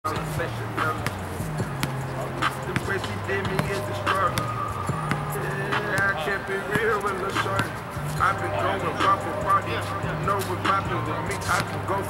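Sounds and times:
music with bass line: 0.1s - 6.2s, 7.3s - 12.0s
players' voices: 0.1s - 12.0s
basketball bouncing on concrete: 0.8s - 7.7s.

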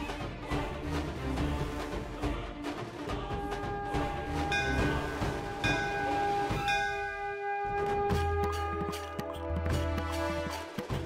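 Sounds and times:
temple bell ringing: 4.5s - 7.6s.

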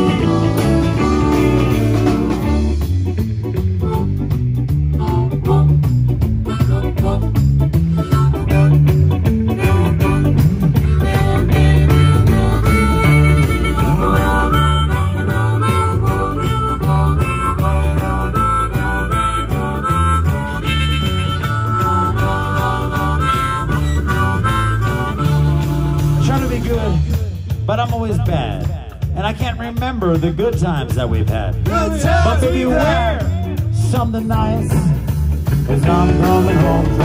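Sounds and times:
amplified blues harmonica: 0.0s - 27.7s
live band electric guitars and bass: 0.0s - 37.0s.

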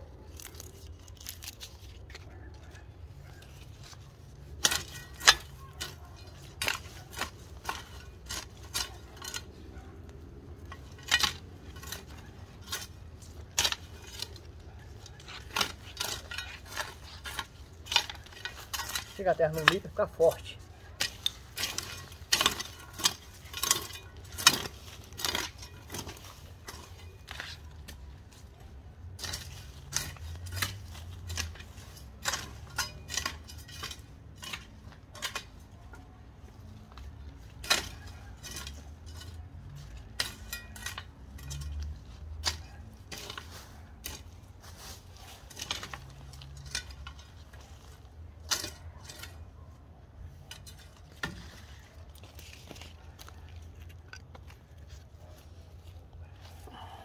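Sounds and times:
hoe chopping stony soil: 4.5s - 9.8s, 15.2s - 28.2s, 29.1s - 35.6s, 36.8s - 49.4s.

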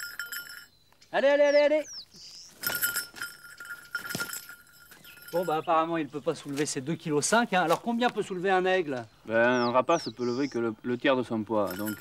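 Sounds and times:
high ringing tone: 0.0s - 1.0s, 2.5s - 5.9s.

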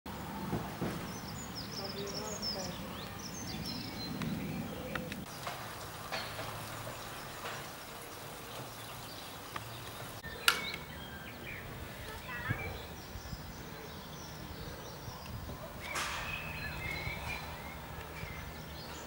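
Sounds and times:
birds chirping: 0.1s - 19.0s.

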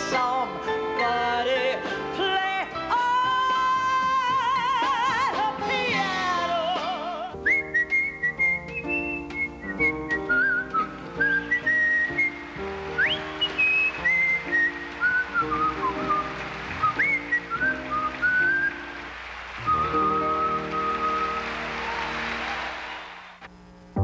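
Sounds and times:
instrumental accompaniment: 0.0s - 22.9s
man whistling a melody: 7.4s - 19.0s, 19.6s - 22.0s.

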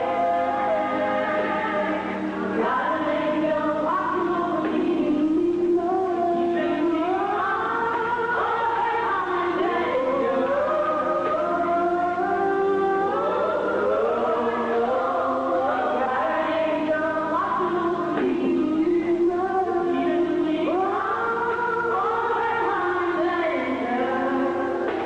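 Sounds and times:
women singing in close harmony: 0.0s - 25.0s.

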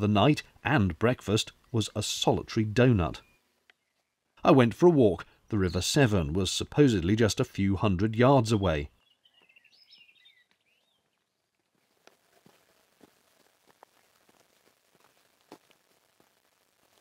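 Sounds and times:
bird singing faintly: 1.3s - 4.4s, 8.2s - 12.0s
faint ticks and rustles: 10.4s - 17.0s.

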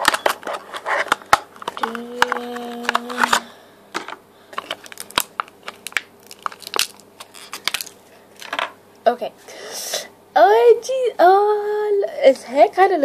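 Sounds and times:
plastic packaging crinkling: 0.0s - 3.5s, 4.5s - 8.6s.

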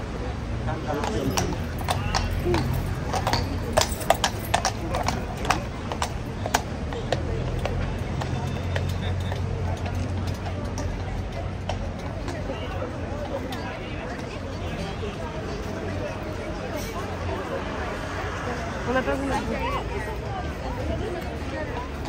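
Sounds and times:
hooves clip-clopping on stone: 0.8s - 15.9s.

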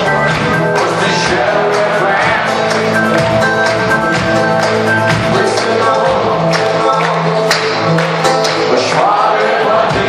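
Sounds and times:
acoustic guitar: 0.0s - 10.0s
live pop-rock band playing: 0.0s - 10.0s
steady drum beats: 0.0s - 10.0s.

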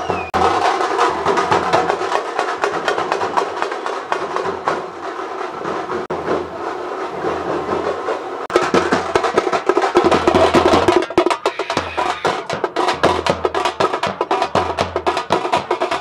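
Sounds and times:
frame drums beaten with sticks: 0.0s - 16.0s.

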